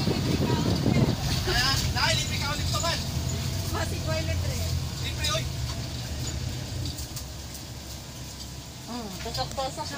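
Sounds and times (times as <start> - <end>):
road noise: 0.0 - 9.9
vehicle engine rumble: 0.0 - 9.9.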